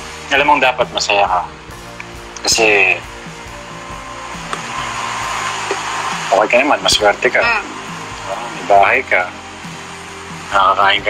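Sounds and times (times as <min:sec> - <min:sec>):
soft music with sustained notes: 0:00.0 - 0:11.0
steady rushing noise: 0:00.0 - 0:11.0.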